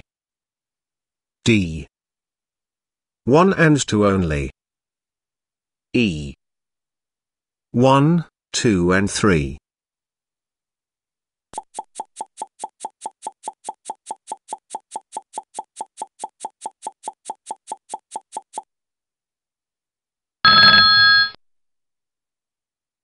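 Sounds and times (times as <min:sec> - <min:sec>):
timer ticking: 0:11.6 - 0:18.7.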